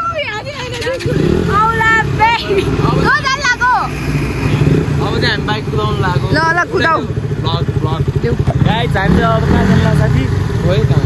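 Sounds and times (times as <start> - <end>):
traffic engine rumble: 0.0 - 11.0
voices calling out: 0.0 - 11.0.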